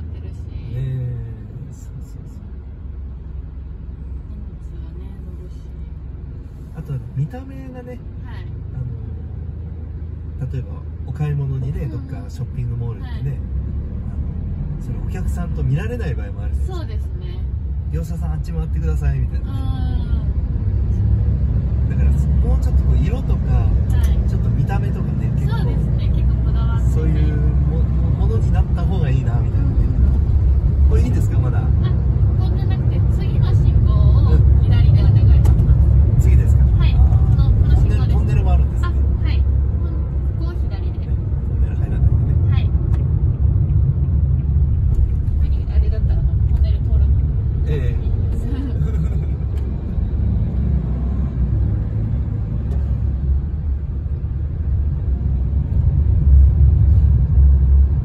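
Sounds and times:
van road and engine rumble: 0.0s - 58.0s.

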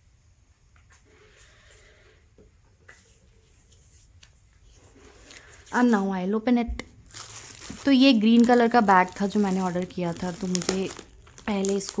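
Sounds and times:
soft rustles: 7.1s - 12.0s.

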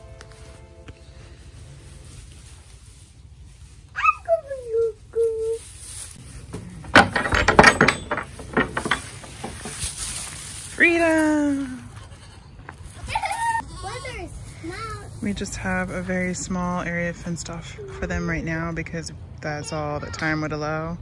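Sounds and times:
sharp knocks and rustles: 5.9s - 10.8s
baby goat bleating: 11.7s - 14.3s.

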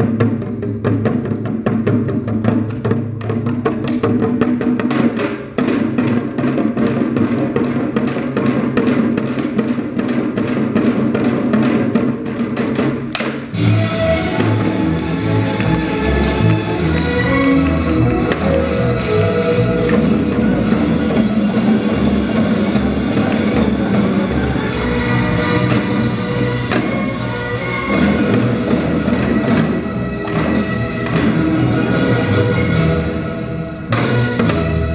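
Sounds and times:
hourglass drums fast rhythm: 0.0s - 32.9s
deep heavy drumbeats: 0.0s - 34.9s
melody: 13.6s - 34.9s.

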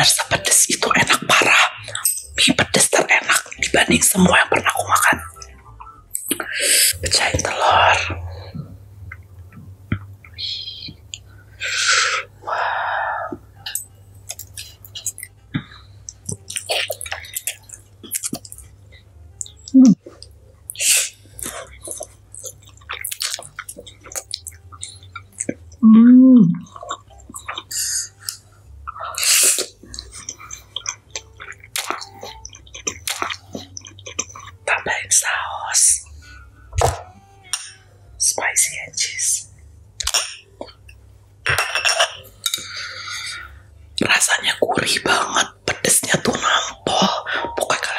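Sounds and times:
person whispering: 0.0s - 5.6s, 6.2s - 8.7s, 10.3s - 11.2s, 19.7s - 20.0s, 25.8s - 26.7s, 34.6s - 37.0s, 38.2s - 39.5s, 43.0s - 47.9s
wet chewing clicks: 16.1s - 18.7s, 21.4s - 25.8s, 26.6s - 34.7s.

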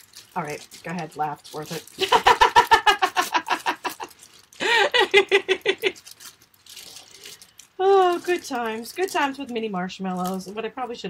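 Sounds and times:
plastic bag rustling: 0.0s - 10.7s
woman's voice: 0.4s - 3.6s, 7.8s - 11.0s.

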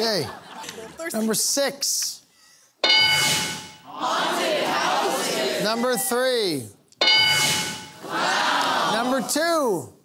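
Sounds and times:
bright chime ding: 2.8s - 3.8s, 7.0s - 8.0s.

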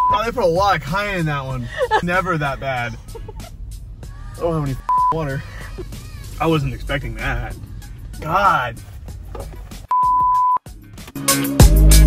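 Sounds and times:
censor bleep tone: 4.9s - 5.2s, 9.9s - 10.6s.

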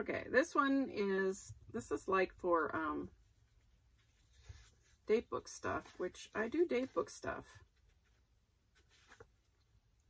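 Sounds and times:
paper sticker sheet rustling: 7.8s - 9.4s.

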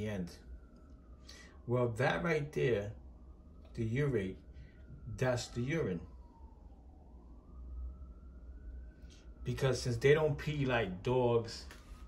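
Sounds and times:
faint wailing siren: 0.0s - 12.0s
steady low hum: 0.0s - 12.0s.

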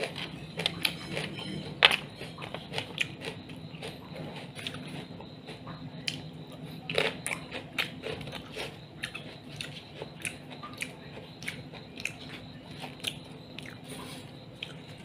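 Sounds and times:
crunching raw vegetable: 0.0s - 15.0s.

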